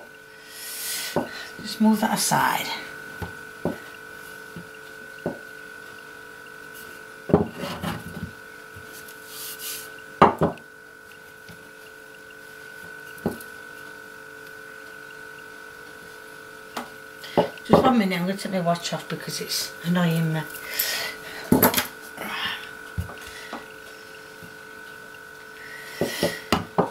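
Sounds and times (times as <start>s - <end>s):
faint steady hum: 0.0s - 26.9s
rolling pin knocking on wooden board: 5.2s - 5.4s, 7.3s - 8.3s, 10.2s - 10.6s.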